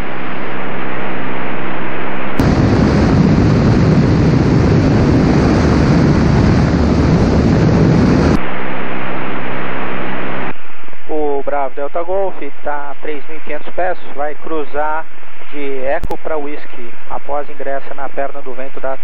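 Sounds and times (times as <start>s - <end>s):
aircraft engine droning in cabin: 0.0s - 8.4s
wind rush and engine noise: 2.4s - 8.4s.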